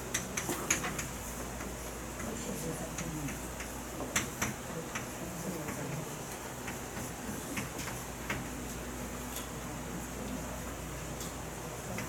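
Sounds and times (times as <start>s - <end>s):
chalk tapping and scratching: 0.0s - 8.5s.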